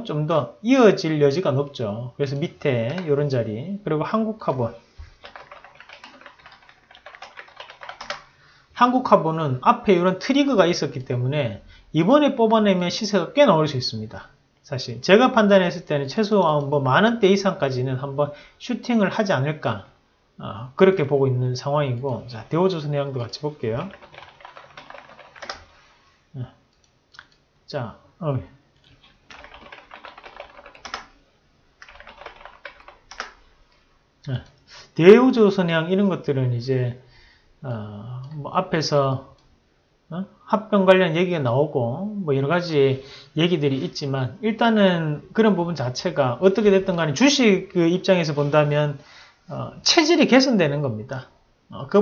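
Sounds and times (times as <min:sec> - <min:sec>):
computer keyboard typing: 0:05.2 - 0:08.3, 0:23.0 - 0:25.7, 0:29.1 - 0:31.2, 0:31.8 - 0:33.4.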